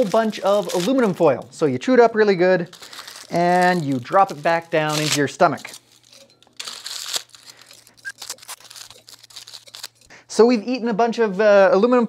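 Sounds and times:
aluminum foil crinkling: 0:00.0 - 0:01.6, 0:02.6 - 0:10.1.

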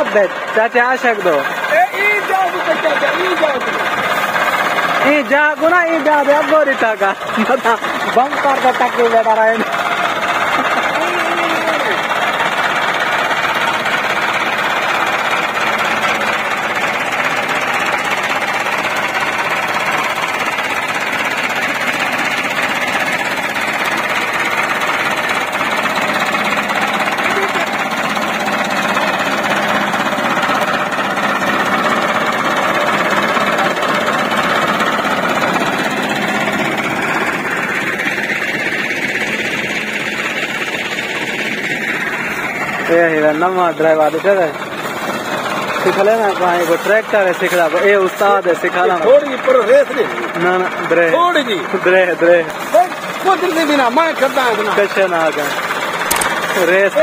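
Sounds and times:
diesel tractor engine running: 0:00.0 - 0:57.0.

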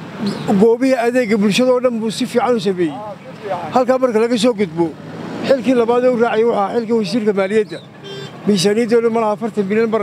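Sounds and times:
man speaking loudly: 0:00.5 - 0:10.0.

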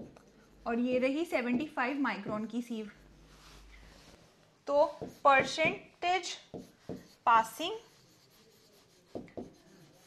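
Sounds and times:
pen scratching on screen: 0:04.8 - 0:05.8, 0:06.4 - 0:10.0.

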